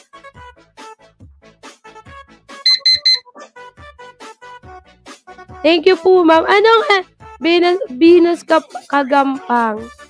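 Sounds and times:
background music: 0:00.0 - 0:10.0
timer alarm beeping: 0:02.7 - 0:03.2.

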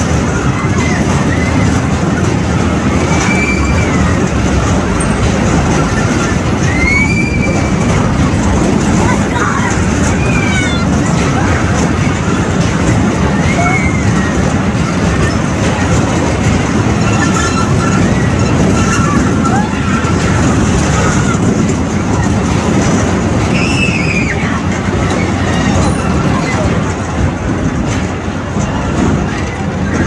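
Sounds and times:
carnival ride mechanical rumble: 0:00.0 - 0:30.0
crowd voices: 0:00.0 - 0:30.0.

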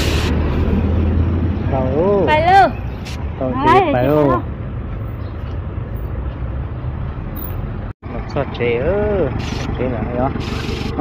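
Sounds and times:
vehicle engine idling: 0:07.0 - 0:11.0.

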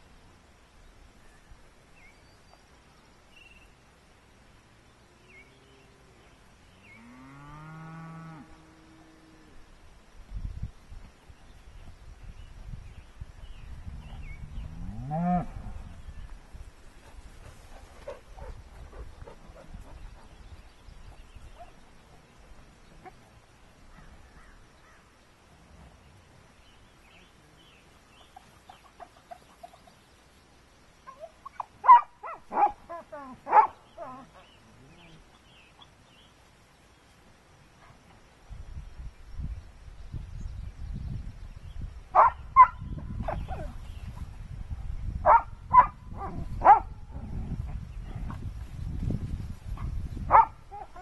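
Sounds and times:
dog barking and yelping: 0:31.1 - 0:34.4, 0:45.3 - 0:46.9.

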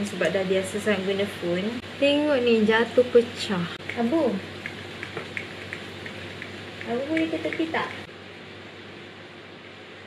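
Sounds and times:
woman calling: 0:06.8 - 0:08.1.

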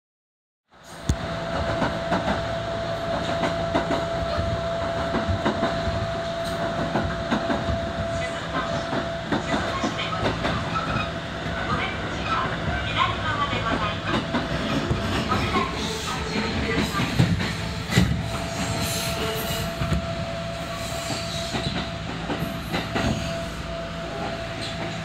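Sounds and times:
train rumbling: 0:00.7 - 0:25.0.

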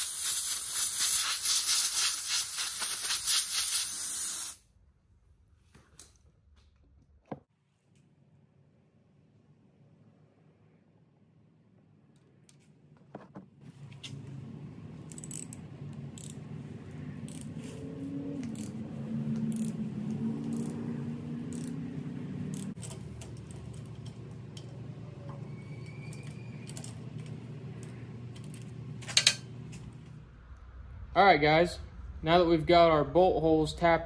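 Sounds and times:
steady low hum: 0:08.4 - 0:34.0
metallic ratchet clicks: 0:15.1 - 0:15.6, 0:16.2 - 0:16.4, 0:19.5 - 0:19.8, 0:20.5 - 0:20.8, 0:21.5 - 0:21.8.

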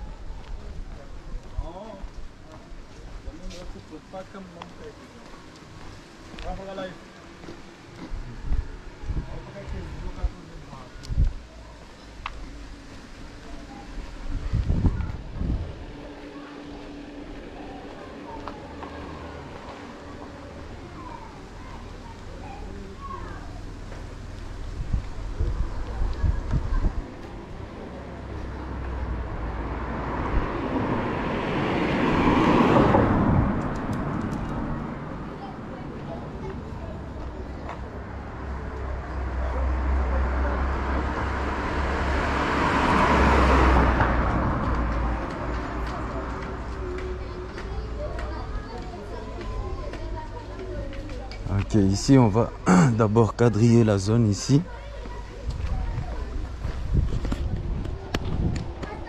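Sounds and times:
footsteps on pavement: 0:00.1 - 0:22.4, 0:23.0 - 0:39.4, 0:42.3 - 0:51.8, 0:54.7 - 0:59.0
motor vehicle passing by: 0:03.2 - 0:51.7, 0:54.3 - 0:59.0
microphone movement rumble: 0:14.0 - 0:16.0, 0:24.3 - 0:29.5, 0:55.5 - 0:59.0.

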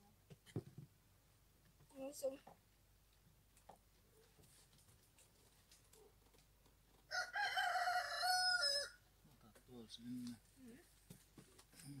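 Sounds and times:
rooster crowing: 0:07.1 - 0:09.0.

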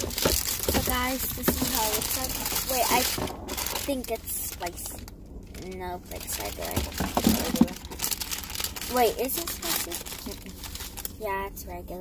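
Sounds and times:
paper wrapper crinkling: 0:00.0 - 0:11.2.

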